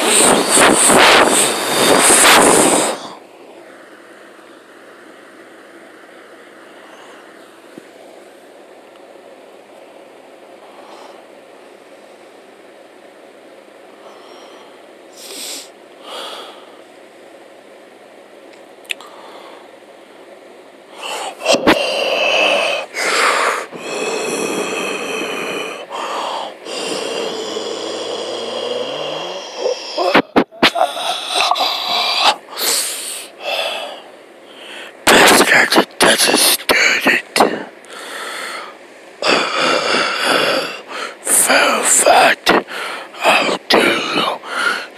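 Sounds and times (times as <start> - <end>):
microphone hiss: 0.0 - 44.9
breathy mouth noises: 21.0 - 32.4.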